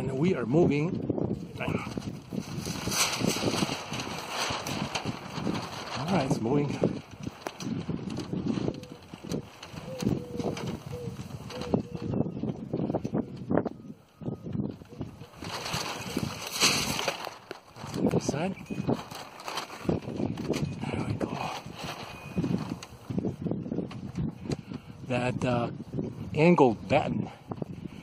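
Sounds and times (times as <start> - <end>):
sail rustling and crackling: 0.0 - 13.8, 14.5 - 28.0
wind gust on microphone: 0.0 - 28.0.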